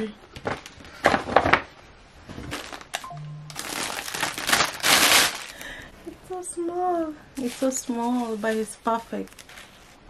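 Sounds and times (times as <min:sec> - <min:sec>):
paper bag rustling: 0:02.2 - 0:05.8, 0:07.4 - 0:10.0.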